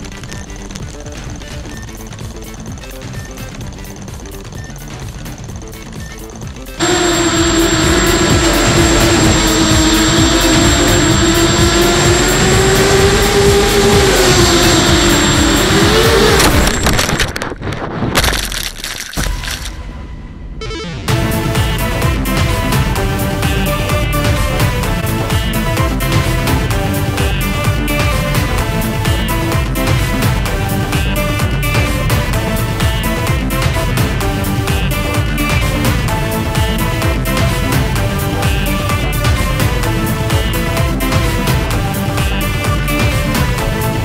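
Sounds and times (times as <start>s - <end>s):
background music with steady beat: 0.0s - 16.7s, 21.1s - 44.0s
quadcopter motors whining: 4.7s - 17.2s, 21.1s - 44.0s.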